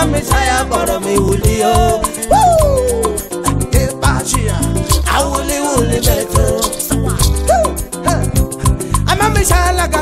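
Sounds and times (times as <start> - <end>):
bass and percussion groove: 0.0 - 10.0.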